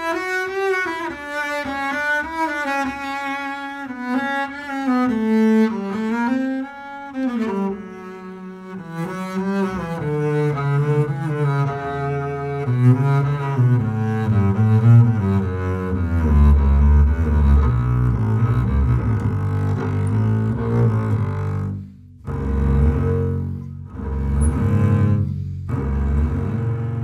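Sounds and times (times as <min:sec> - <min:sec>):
bowed double bass: 0:00.0 - 0:27.0.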